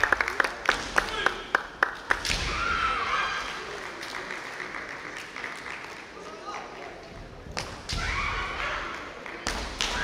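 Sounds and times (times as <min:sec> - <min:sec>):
crowd murmur in a hall: 0:00.0 - 0:10.0.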